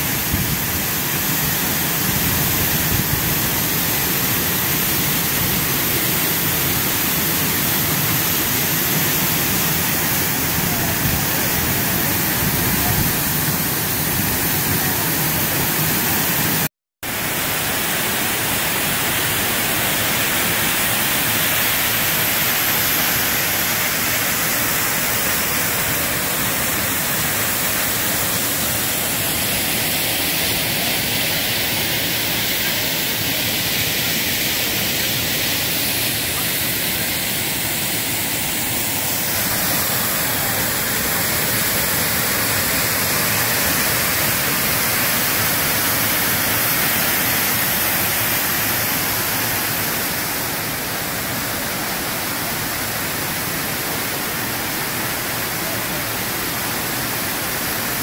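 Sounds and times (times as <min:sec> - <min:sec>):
waterfall rushing: 0:00.0 - 0:58.0.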